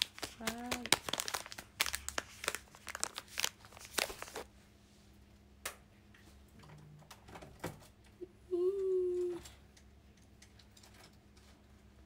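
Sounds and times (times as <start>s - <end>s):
plastic wrapper crinkling: 0.0s - 4.5s.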